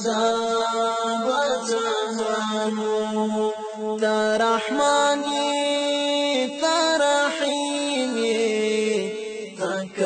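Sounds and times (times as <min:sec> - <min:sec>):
person chanting: 0:00.0 - 0:10.0.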